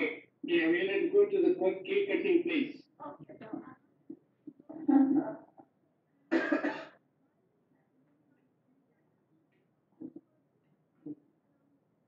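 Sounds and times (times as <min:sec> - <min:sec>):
person coughing: 0:06.3 - 0:07.0.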